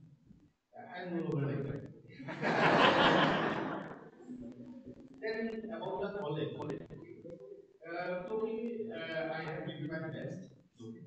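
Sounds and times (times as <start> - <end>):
man speaking into a microphone: 0.8 - 2.4, 4.2 - 11.0.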